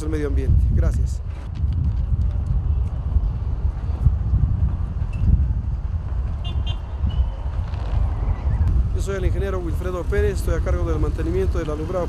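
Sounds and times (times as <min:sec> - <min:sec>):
low rumble: 0:00.4 - 0:10.8.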